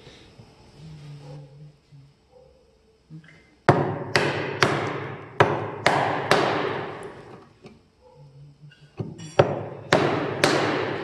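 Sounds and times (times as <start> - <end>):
hammer striking chisel into wood: 3.7 - 7.1, 9.0 - 11.0.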